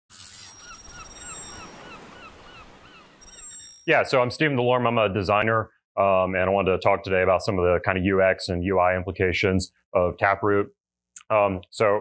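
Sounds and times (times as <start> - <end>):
bird chirping: 0.4 - 3.9.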